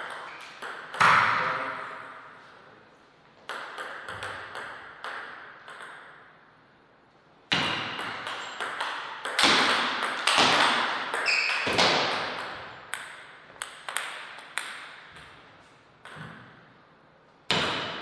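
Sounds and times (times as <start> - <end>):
table tennis ball clicks: 3.5 - 6.2.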